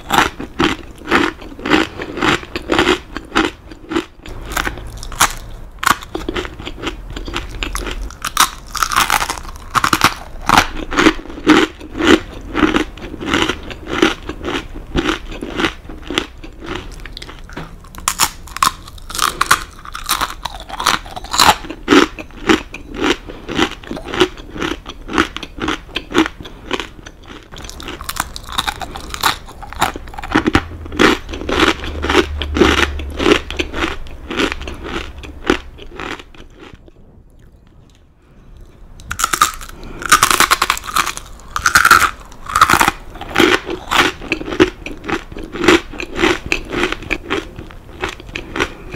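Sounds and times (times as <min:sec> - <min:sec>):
crunchy chewing of crackers: 0:00.0 - 0:48.9.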